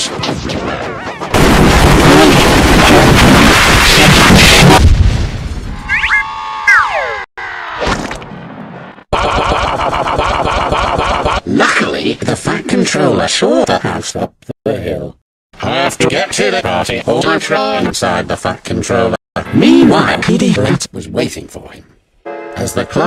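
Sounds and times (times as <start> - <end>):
splash and crash effect: 1.3 - 6.0
falling whistle-like glides: 5.8 - 7.3.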